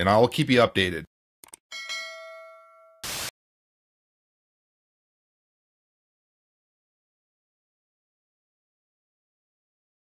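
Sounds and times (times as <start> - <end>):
bell-like ding: 1.7 - 3.1
short burst of hiss: 3.0 - 3.3.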